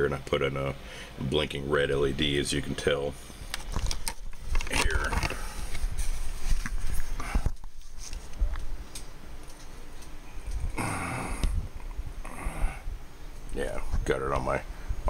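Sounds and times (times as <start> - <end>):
recording device handling: 3.4 - 10.7.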